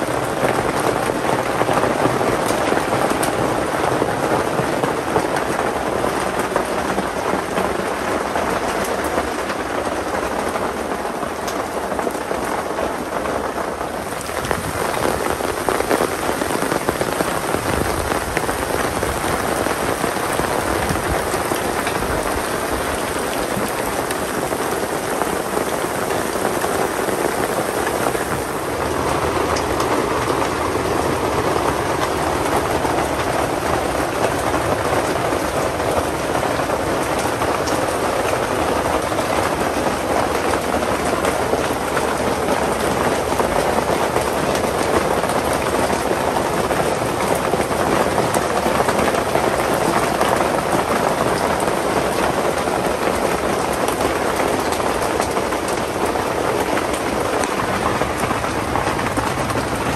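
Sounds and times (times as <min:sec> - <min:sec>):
rain on a tent: 0:00.0 - 0:59.9.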